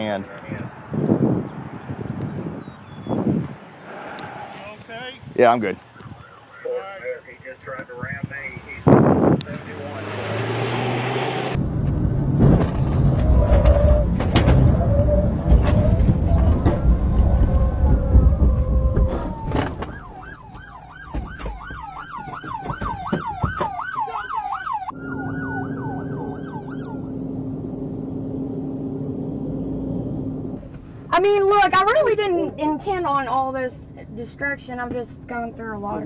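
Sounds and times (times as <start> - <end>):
police siren yelp and wail: 5.9 - 6.8, 14.7 - 27.4
sharp knocks: 18.0 - 23.8.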